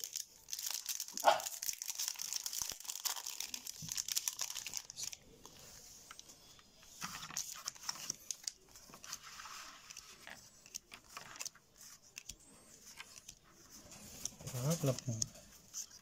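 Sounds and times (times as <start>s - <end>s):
foil wrapper crinkling: 0.0s - 5.2s
cards being handled: 2.7s - 16.0s.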